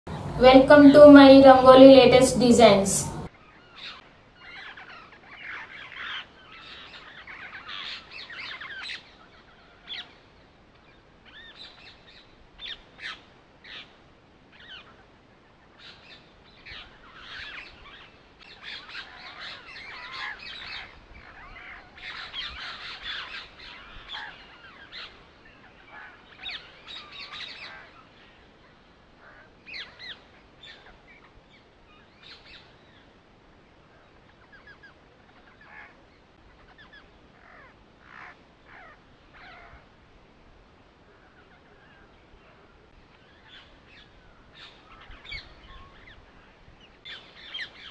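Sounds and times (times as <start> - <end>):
birds chirping: 0.1 - 13.8.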